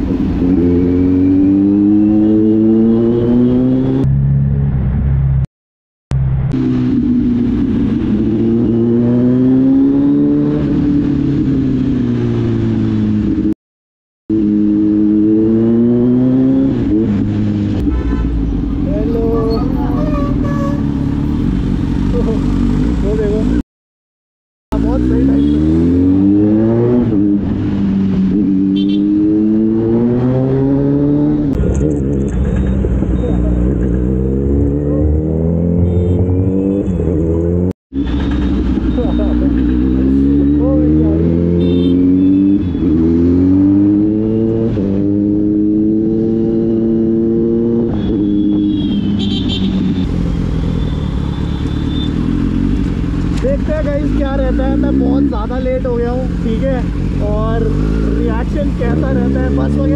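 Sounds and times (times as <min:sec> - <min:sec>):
motorcycle engine accelerating: 0:24.7 - 0:59.9.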